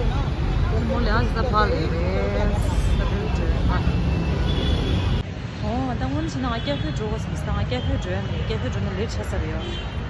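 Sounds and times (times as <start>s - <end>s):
motorbikes: 0.0s - 10.0s
street traffic rumble: 0.0s - 10.0s.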